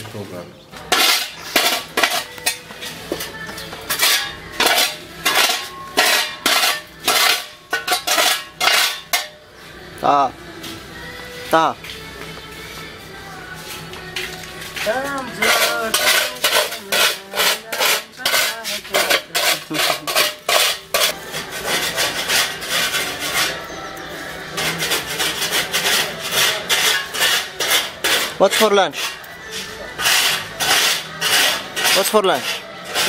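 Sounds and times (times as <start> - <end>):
metal dustpan scraping concrete: 0.8 - 9.5, 14.6 - 33.0.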